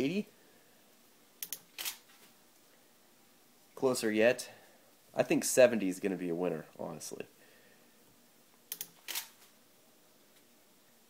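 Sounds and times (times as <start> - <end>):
camera shutter clicking: 1.4 - 2.1, 8.7 - 9.4.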